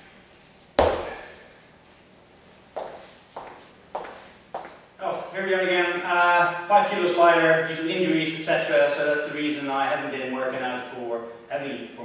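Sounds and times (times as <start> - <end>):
kettlebell thud on wooden floor: 0.8 - 1.3.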